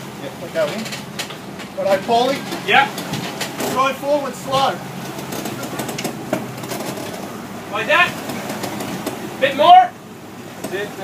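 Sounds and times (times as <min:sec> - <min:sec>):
boat engine rumble: 0:00.0 - 0:11.0
water washing at stern: 0:00.0 - 0:11.0.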